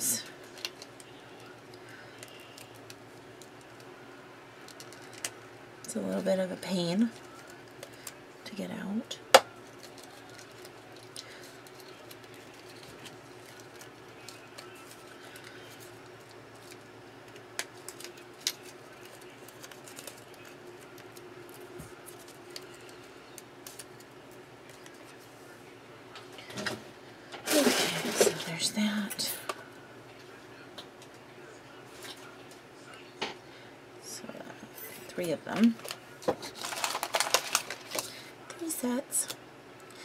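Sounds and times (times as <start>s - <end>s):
faint steady hum: 0.0s - 40.0s
paper rustle: 9.6s - 24.1s, 35.6s - 38.2s
cardstock handling sounds: 16.6s - 23.0s, 35.6s - 38.1s.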